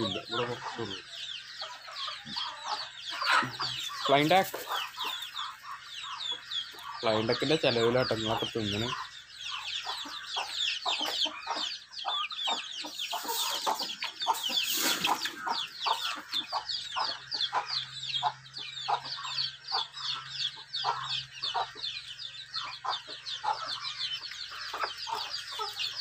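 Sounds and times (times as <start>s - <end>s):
chicks peeping: 0.0s - 26.0s
rustling: 13.2s - 15.5s.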